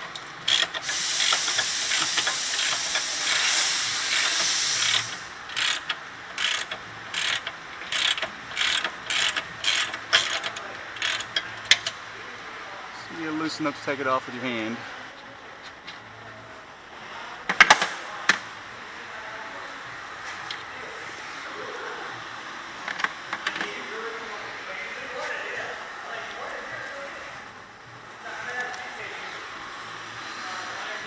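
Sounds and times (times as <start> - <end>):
auto shop background noise: 0.0 - 31.0
faint voices: 12.0 - 22.4.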